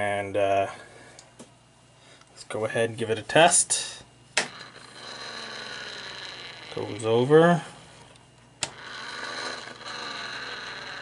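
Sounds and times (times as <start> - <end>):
small motor humming: 4.6 - 6.9, 8.6 - 11.0.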